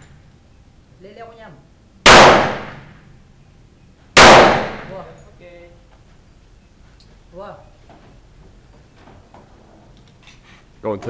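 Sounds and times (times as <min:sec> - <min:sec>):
pistol shots echoing: 0:02.1 - 0:03.0, 0:04.2 - 0:05.1.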